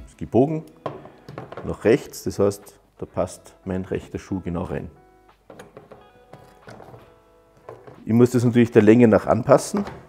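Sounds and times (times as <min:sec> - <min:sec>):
soft background music: 0:00.0 - 0:10.0.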